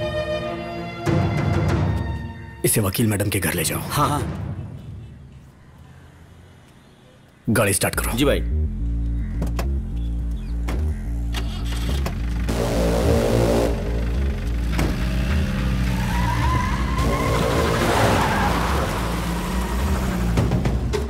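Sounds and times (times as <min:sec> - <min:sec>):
film music score: 0:00.0 - 0:05.3, 0:07.6 - 0:21.0
car engine revving: 0:08.4 - 0:21.0.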